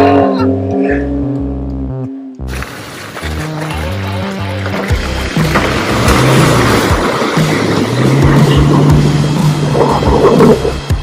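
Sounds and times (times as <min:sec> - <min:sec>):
wheels spinning in mud: 0:02.5 - 0:10.8
electronic music with a beat: 0:03.3 - 0:11.0
suv engine revving under load: 0:05.3 - 0:10.9.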